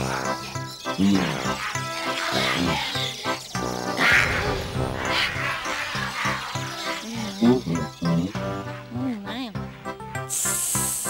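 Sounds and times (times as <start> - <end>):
cartoon music: 0.0 - 9.6.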